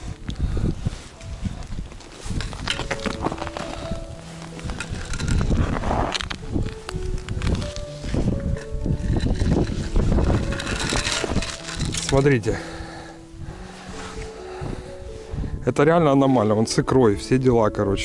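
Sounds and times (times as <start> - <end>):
wind buffeting microphone: 0.0 - 16.1
background music: 0.0 - 18.0
footsteps on snowy ice: 1.1 - 12.2.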